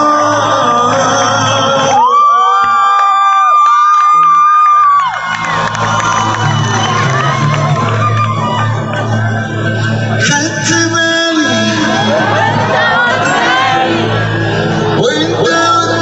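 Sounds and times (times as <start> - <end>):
live pop band playing: 0.0 - 2.9, 4.0 - 16.0
crowd cheering: 0.0 - 10.4, 11.4 - 16.0.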